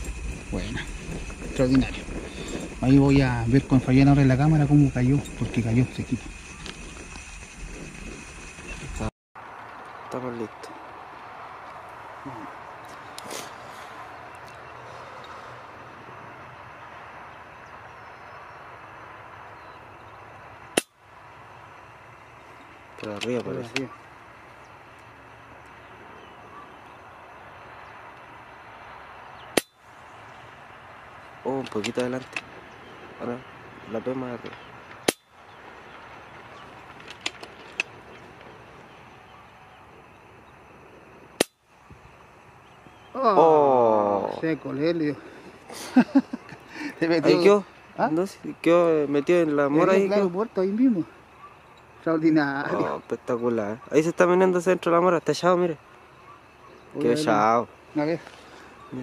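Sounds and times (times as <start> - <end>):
steady outdoor hiss: 0.0 - 59.0.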